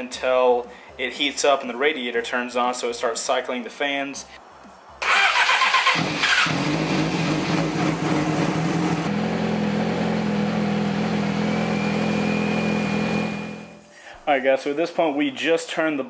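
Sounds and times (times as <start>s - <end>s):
motorcycle engine idling: 6.0s - 13.7s.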